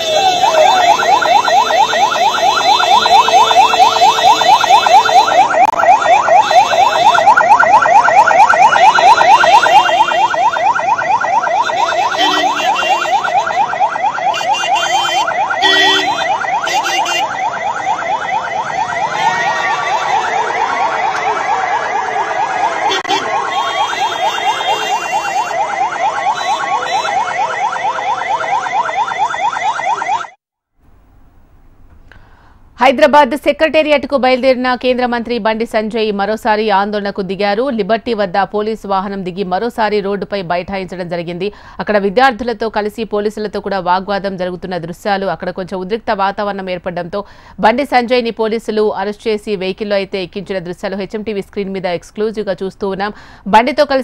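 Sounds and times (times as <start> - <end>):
police siren yelping: 0.0 - 30.4.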